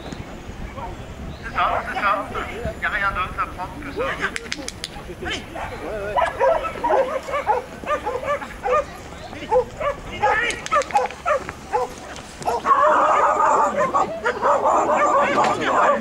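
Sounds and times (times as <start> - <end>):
voices: 0.0 - 16.0
dog barking: 1.6 - 2.5, 5.5 - 16.0.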